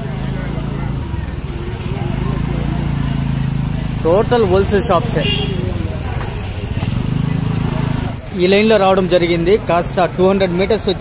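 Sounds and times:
scooter engine running: 0.0 - 8.3
street traffic: 0.0 - 11.0.

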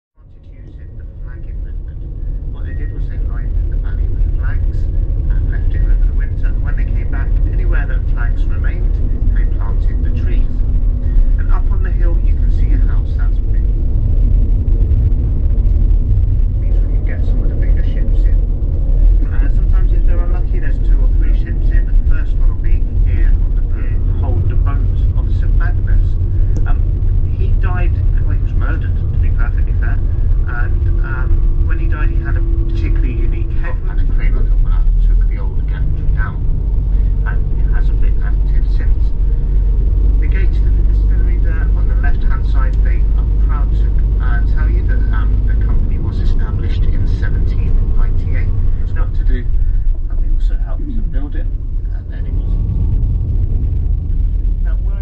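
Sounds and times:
indistinct voices chattering: 0.2 - 52.9
vehicle engine and road rumble: 0.2 - 55.0.

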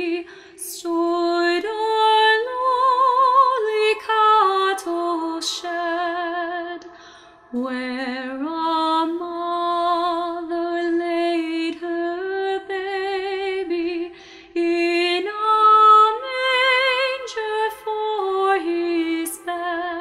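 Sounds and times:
woman singing unaccompanied: 0.0 - 6.8, 7.5 - 20.0
singer breathing: 0.2 - 0.6, 6.8 - 7.6, 14.1 - 14.6.

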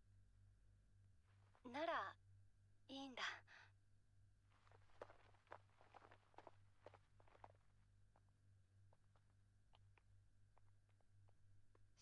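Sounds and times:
woman speaking softly: 1.6 - 2.2, 2.9 - 3.6.

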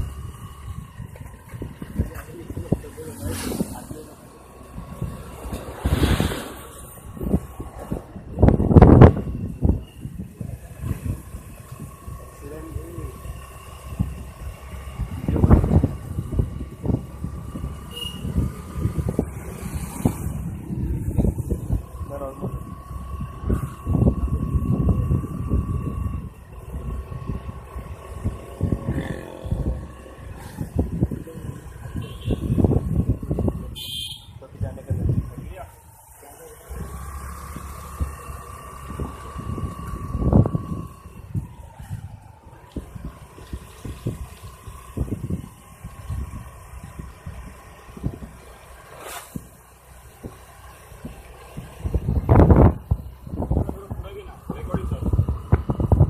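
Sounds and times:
wind buffeting microphone: 0.0 - 3.9, 4.5 - 12.3, 13.3 - 33.8, 36.7 - 48.6, 49.3 - 56.0.

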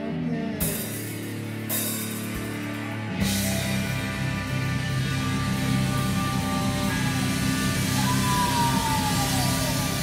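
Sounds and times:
rock band sustained chord: 0.6 - 10.0
guitar note gliding down: 3.4 - 10.0.

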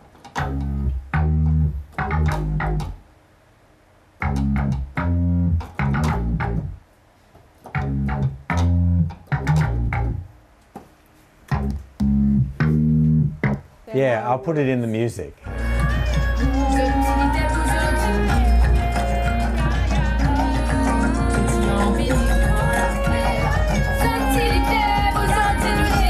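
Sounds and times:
synthesizer bass riff: 0.4 - 3.0, 4.2 - 6.8, 7.8 - 10.2, 11.5 - 13.7, 15.4 - 26.0.

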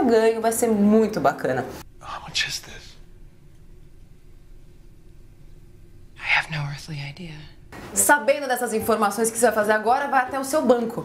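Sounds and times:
person whispering: 2.0 - 3.0, 6.2 - 7.6.

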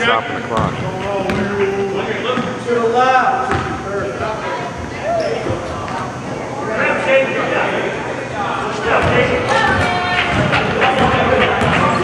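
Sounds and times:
basketball bouncing on wooden floor: 3.5 - 3.7, 9.0 - 11.9
people shouting in a gym: 8.9 - 12.0.

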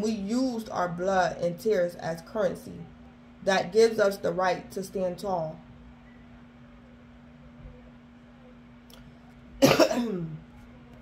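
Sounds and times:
person coughing: 9.6 - 10.4.

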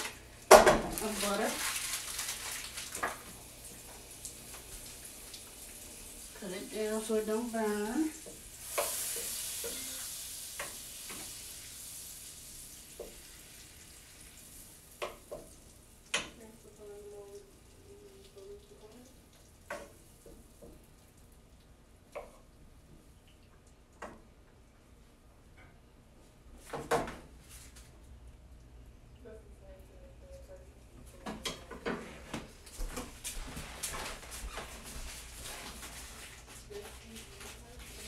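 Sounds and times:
butter sizzling in a skillet: 0.4 - 17.6
wooden spoon scraping a pan: 7.7 - 11.3.

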